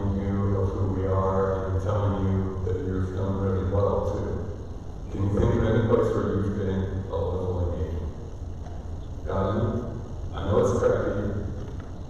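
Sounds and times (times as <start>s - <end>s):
man speaking with echo: 0.0s - 8.2s, 9.2s - 11.6s.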